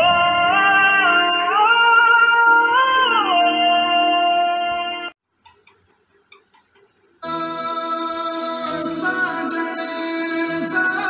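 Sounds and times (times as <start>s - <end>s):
song music: 0.0s - 5.2s, 7.2s - 11.0s.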